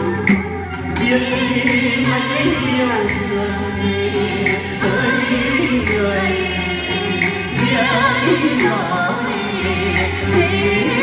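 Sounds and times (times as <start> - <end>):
instrumental backing: 0.0 - 11.0
folk singing voices: 0.8 - 11.0.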